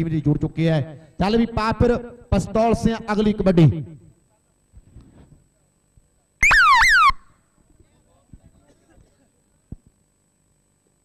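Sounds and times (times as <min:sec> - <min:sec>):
shrill falling tone: 0:06.4 - 0:07.3.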